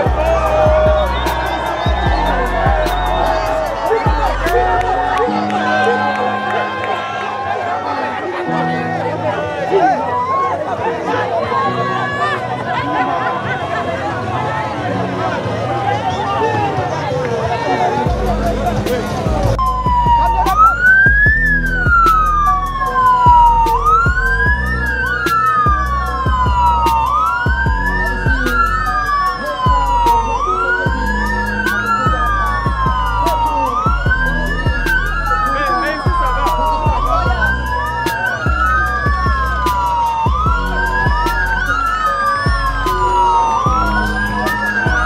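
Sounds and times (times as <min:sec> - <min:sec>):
music with steady low beat: 0:00.0 - 0:07.0, 0:18.1 - 0:45.0
police sirens wailing: 0:00.0 - 0:45.0.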